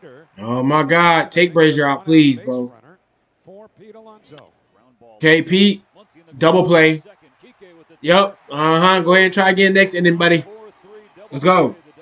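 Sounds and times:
loud talk: 0.0 - 2.8, 3.5 - 12.0
faint tv sports commentary: 0.0 - 12.0.

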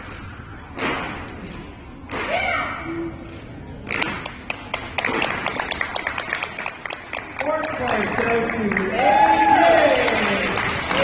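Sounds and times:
scattered hand clapping: 3.9 - 11.0.

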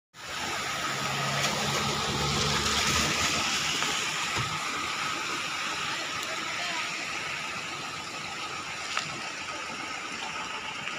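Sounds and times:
floodwater rushing: 0.2 - 10.9.

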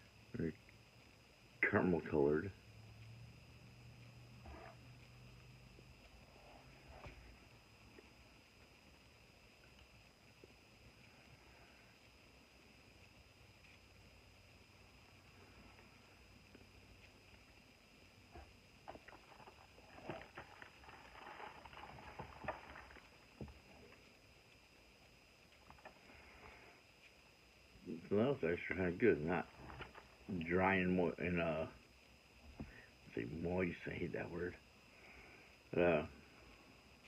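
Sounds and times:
quiet chewing: 15.2 - 24.6
cardboard box crackling: 19.3 - 23.1.

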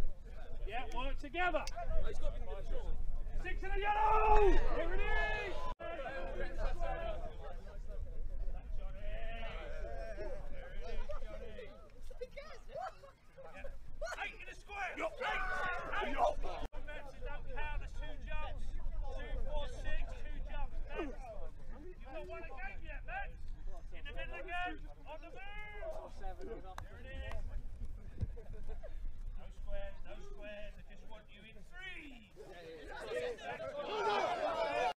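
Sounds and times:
men calling out and chatting: 0.0 - 34.9
men shouting: 14.8 - 16.5, 33.2 - 34.9.

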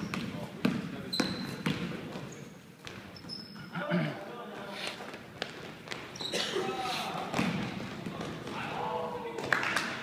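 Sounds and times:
basketball bouncing on wooden floor: 0.0 - 3.4, 7.3 - 8.6.

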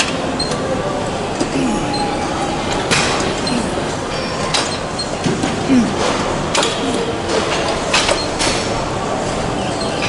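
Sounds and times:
ceiling fans whirring: 0.0 - 10.0.

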